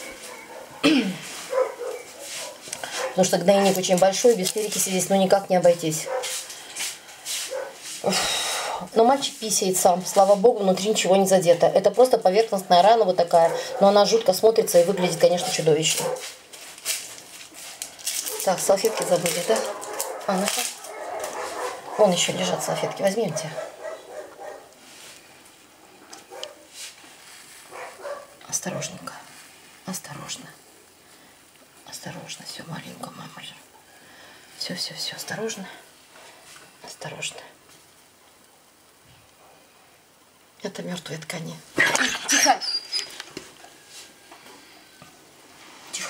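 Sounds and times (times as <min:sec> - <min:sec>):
dog whimpering: 0:42.0 - 0:43.2.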